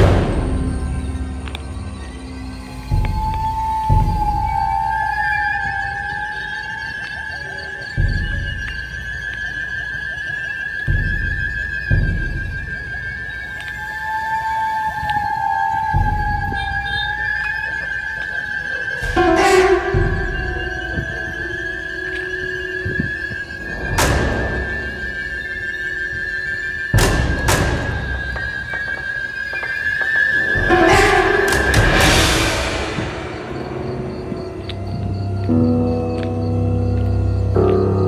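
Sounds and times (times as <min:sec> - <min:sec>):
eerie held high tone: 0:00.0 - 0:38.0
deep booming hits: 0:19.0 - 0:21.6.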